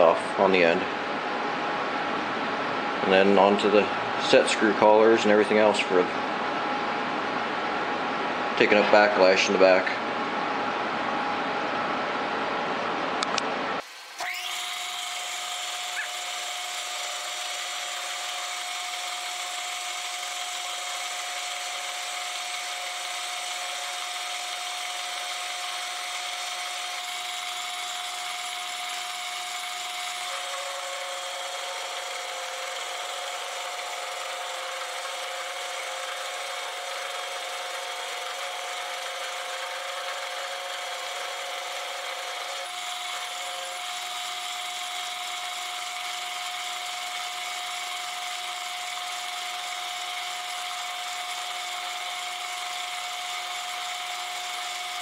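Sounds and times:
metal lathe whine: 13.8 - 55.0.

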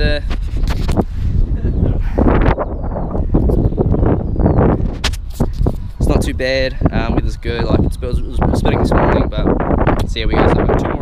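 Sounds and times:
wind gusts on microphone: 0.0 - 11.0
man laughing: 1.5 - 2.3.

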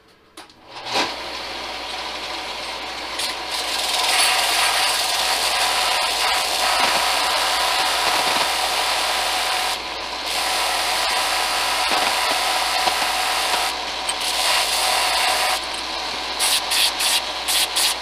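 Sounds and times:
belt sander motor hum: 0.8 - 18.0
metal tube grinding on sander belt: 2.5 - 18.0.

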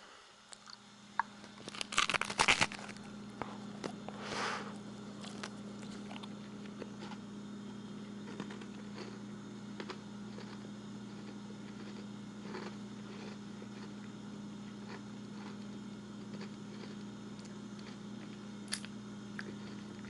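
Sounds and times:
low steady hum: 0.0 - 20.0
person chewing a cookie: 0.5 - 4.3, 5.1 - 7.3, 7.9 - 20.0.

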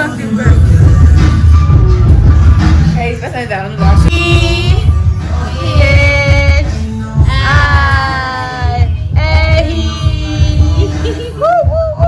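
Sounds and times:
pulsing bass beat: 0.4 - 12.0.

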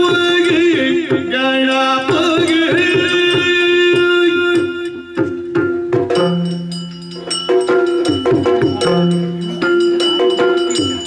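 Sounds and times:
drum strokes: 0.0 - 11.0
small hand cymbals ringing: 1.6 - 11.0.

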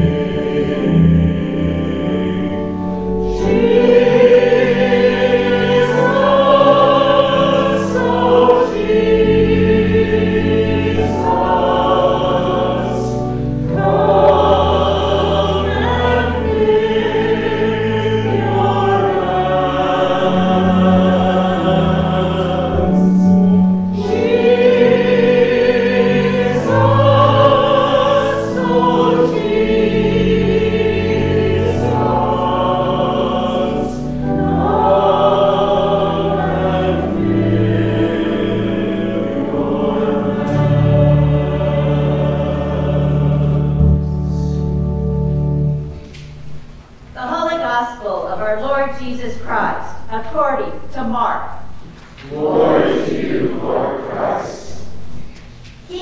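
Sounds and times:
choir singing a hymn: 0.0 - 46.3, 52.2 - 55.3.

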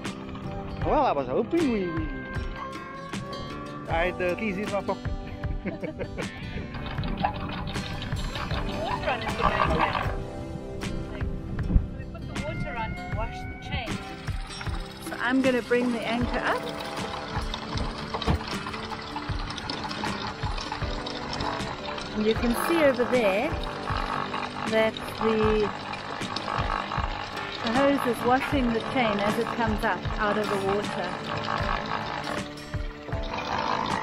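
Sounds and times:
background music with held tones: 0.0 - 34.0
windlass motor hum: 5.3 - 34.0
hose water splashing on chain: 6.5 - 10.2, 13.9 - 34.0
chain links clanking: 14.0 - 22.4.

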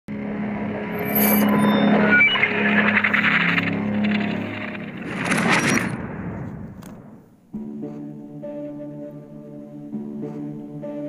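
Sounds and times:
low drone: 0.1 - 11.0.

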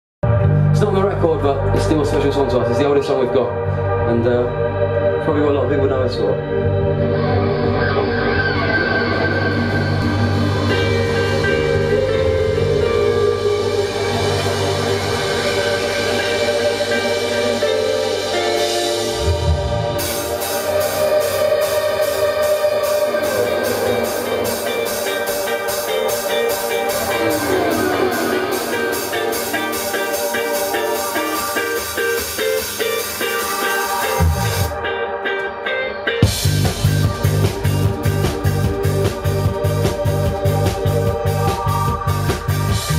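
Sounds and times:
bass sliding downward: 0.2 - 34.8, 36.2 - 42.9
live rock band playing: 6.2 - 42.9.

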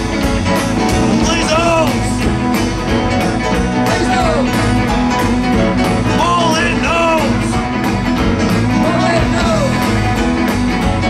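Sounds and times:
rock band playing: 0.0 - 11.0
sliding guitar melody line: 0.0 - 11.0.

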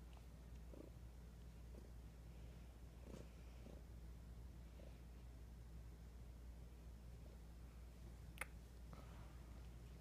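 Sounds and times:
cat purring: 0.0 - 5.4.

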